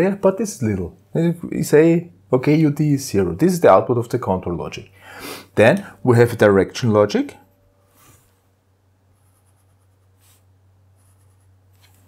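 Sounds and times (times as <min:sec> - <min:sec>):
low steady hum: 0:00.0 - 0:12.0
felt-tip pen scratching paper: 0:11.0 - 0:12.0.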